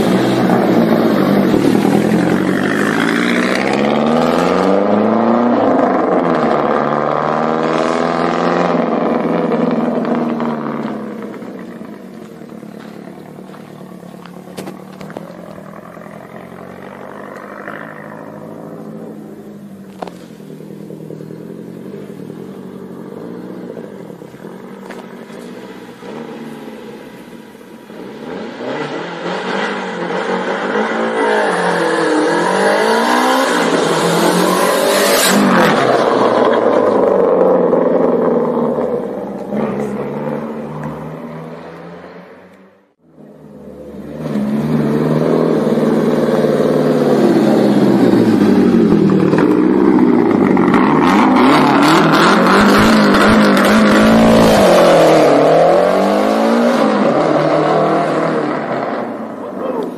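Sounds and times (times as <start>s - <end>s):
rally car engine revving: 0.0s - 59.9s.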